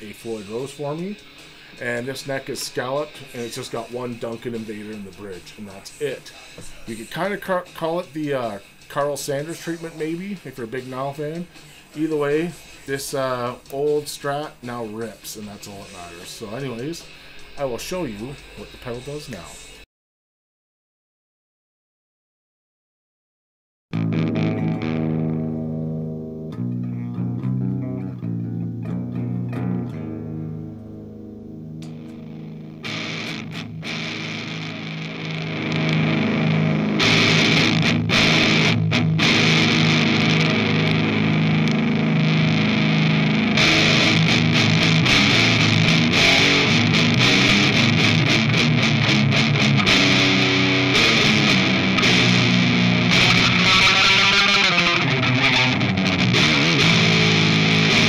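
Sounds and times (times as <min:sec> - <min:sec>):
distorted electric guitar riffs: 0:00.0 - 0:19.8, 0:23.9 - 0:58.0
clean electric guitar notes: 0:24.0 - 0:58.0.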